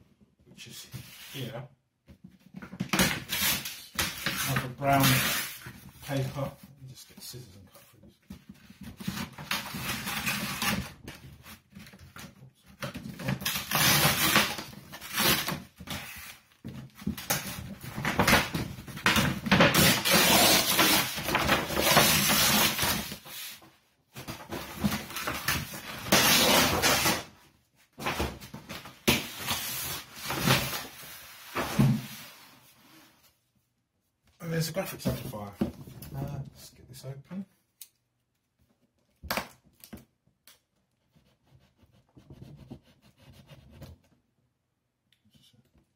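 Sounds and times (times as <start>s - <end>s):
paper crinkling and tearing: 19.7s - 23.2s
cardboard sliding and knocking: 28.0s - 32.4s.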